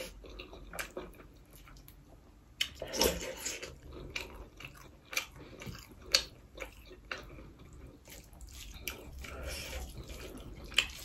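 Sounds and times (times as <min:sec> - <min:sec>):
wet chewing: 0:00.0 - 0:11.0.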